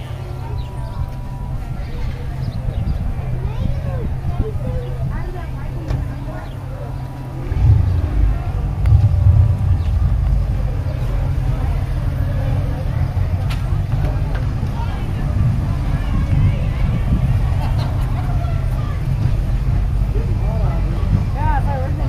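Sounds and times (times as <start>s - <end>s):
faint voices talking: 0.0s - 22.0s
wind buffeting microphone: 0.0s - 22.0s.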